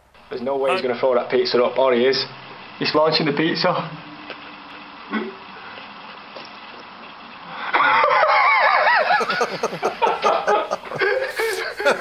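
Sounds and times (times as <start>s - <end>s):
person's voice: 0.6s - 0.9s, 9.2s - 12.0s
people laughing: 7.8s - 12.0s.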